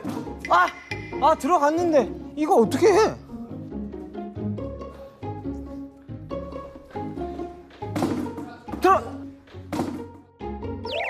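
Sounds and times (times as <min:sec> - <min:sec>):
plucked background music: 0:00.0 - 0:11.0.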